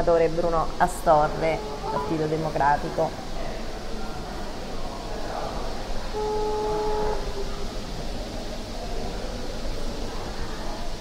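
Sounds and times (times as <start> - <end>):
telephone ringback tone: 6.2 - 7.3.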